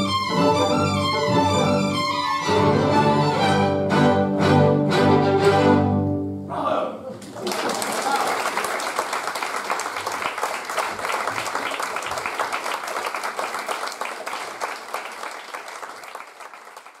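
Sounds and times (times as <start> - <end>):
audience applauding: 7.1 - 17.0.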